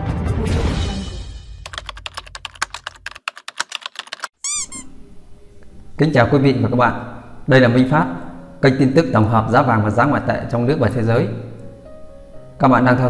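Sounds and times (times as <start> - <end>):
rapid typing-like clicks: 1.7 - 4.4
squeaky warbling sound effect: 4.3 - 5.0.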